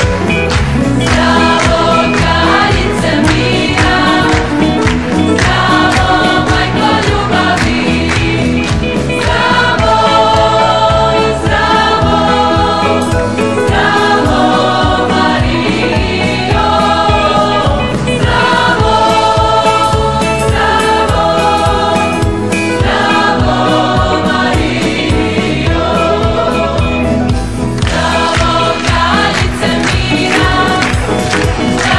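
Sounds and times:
choir singing upbeat song: 0.0 - 31.9
steady beat: 0.0 - 31.9.

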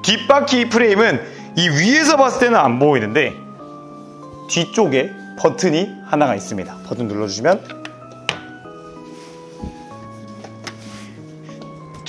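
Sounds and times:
slow held-note music: 0.0 - 12.0.

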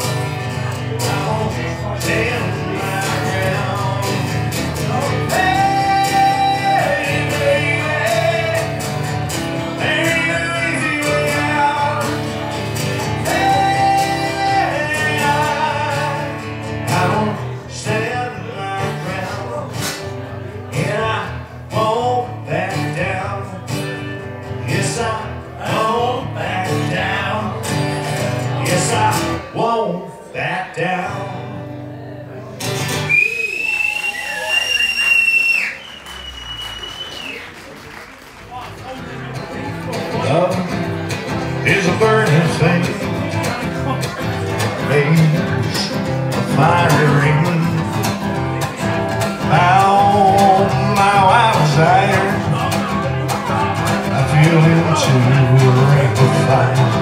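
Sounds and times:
man singing: 0.0 - 32.5, 39.0 - 57.0
strummed acoustic guitar: 0.0 - 34.0, 38.5 - 57.0.

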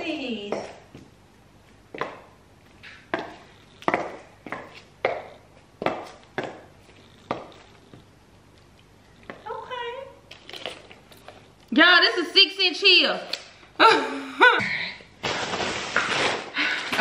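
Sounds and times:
high heels on tile floor: 0.0 - 8.1.

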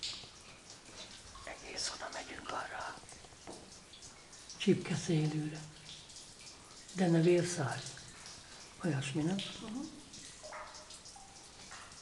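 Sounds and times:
person whispering softly: 1.4 - 3.1.

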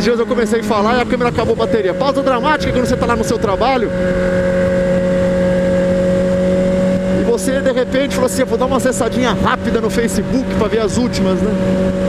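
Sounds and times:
motorcycle engine droning: 0.0 - 12.0
wind rushing on microphone: 0.0 - 12.0.

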